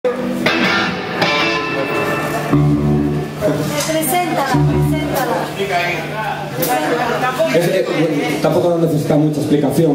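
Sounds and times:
electric guitar chords ringing: 0:00.1 - 0:06.2.

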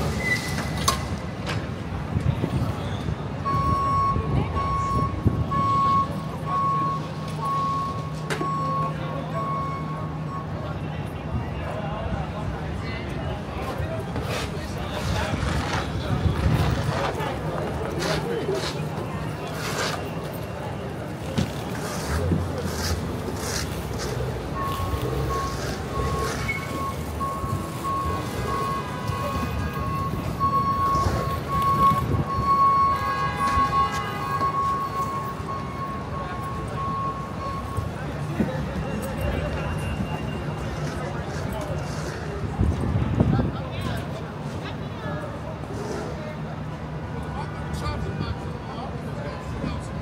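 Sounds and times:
engine and traffic rumble: 0:00.0 - 0:50.0
vehicle reverse alarm beeping: 0:03.4 - 0:11.5, 0:22.7 - 0:41.2.

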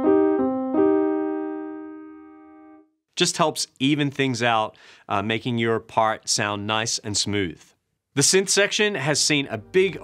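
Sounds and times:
piano chords: 0:00.0 - 0:02.9, 0:09.4 - 0:10.0.

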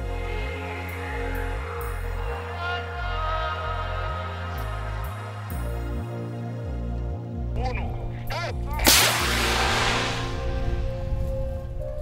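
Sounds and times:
flare bang: 0:08.8 - 0:11.2
flare hissing rush: 0:08.9 - 0:11.2.

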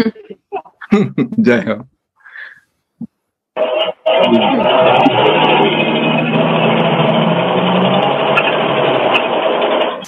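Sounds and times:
low hum: 0:03.7 - 0:10.0.

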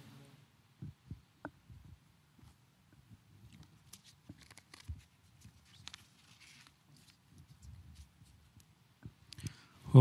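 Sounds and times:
soft rustles: 0:01.8 - 0:08.7.

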